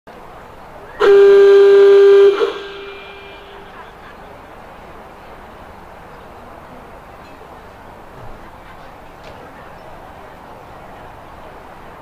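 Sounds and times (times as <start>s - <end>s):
arena background noise: 0.1s - 12.0s
long horn blast: 1.0s - 4.0s.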